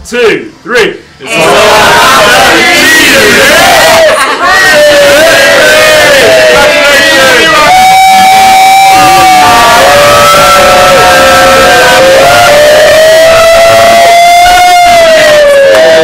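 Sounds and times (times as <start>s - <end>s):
group of people cheering: 1.3s - 16.0s.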